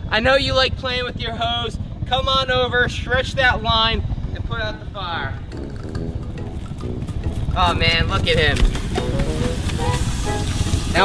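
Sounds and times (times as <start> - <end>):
water hissing on hot lava: 8.7 - 11.0.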